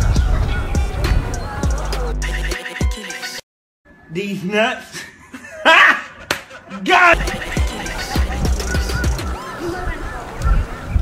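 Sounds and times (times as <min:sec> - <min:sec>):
man's voice: 0:06.7 - 0:09.2.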